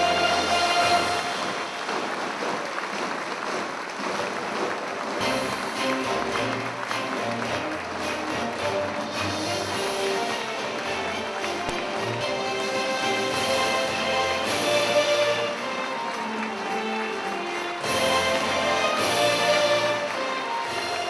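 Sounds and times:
loud rally music: 0.0s - 2.0s, 5.2s - 21.0s
audience applause: 0.0s - 21.0s.

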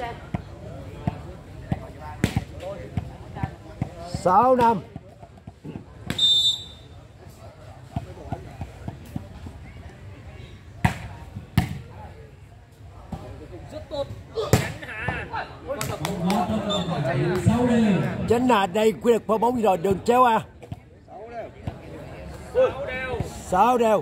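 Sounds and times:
short whistle: 6.1s - 7.0s.

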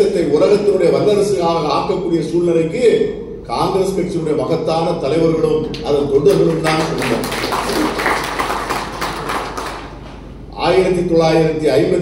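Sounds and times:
audience clapping: 5.7s - 10.2s.

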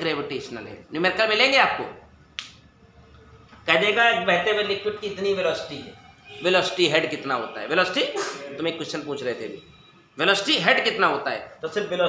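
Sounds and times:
man speaking: 0.0s - 2.1s, 3.7s - 9.6s, 10.2s - 12.0s.

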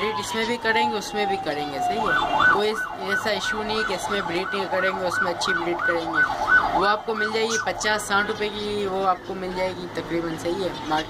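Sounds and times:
siren yelping: 0.0s - 9.9s.

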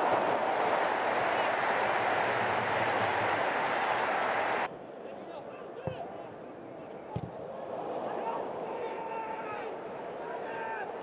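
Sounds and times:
stadium crowd noise: 0.0s - 11.0s.

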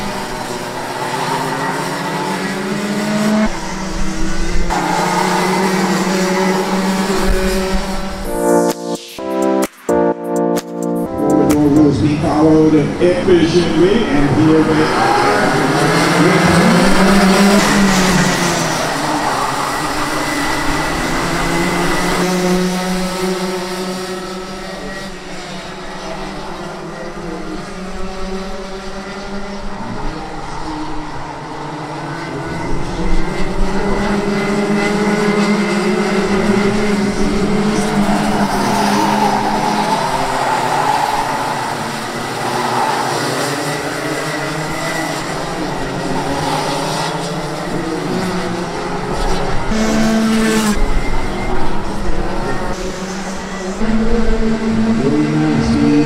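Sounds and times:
racing kart engines: 0.0s - 8.3s, 11.4s - 56.0s.

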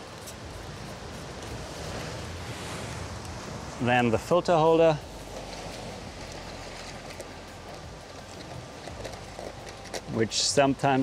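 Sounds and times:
distant surf: 0.0s - 11.0s
wind hiss: 0.0s - 11.0s.

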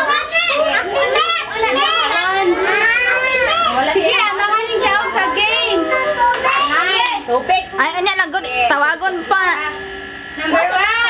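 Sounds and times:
young children talking: 0.0s - 11.0s.

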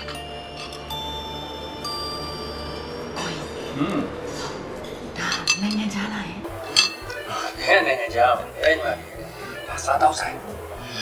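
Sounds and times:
tableware clinking on plates: 5.3s - 5.9s, 6.6s - 7.3s.

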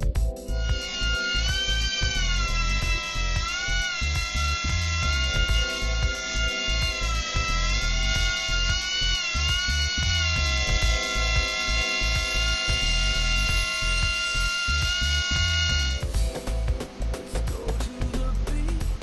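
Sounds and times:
tiny electric motor and propeller whining: 0.5s - 16.2s.

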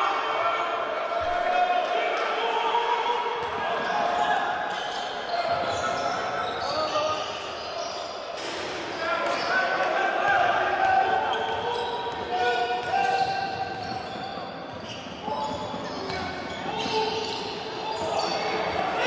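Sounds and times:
players' voices echoing: 0.0s - 19.0s
sneakers squeaking: 3.4s - 9.8s, 10.9s - 19.0s.

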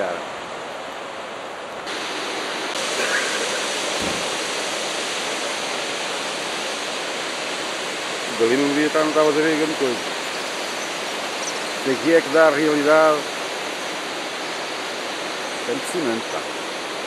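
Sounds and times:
water rushing from spillway: 0.0s - 17.0s.

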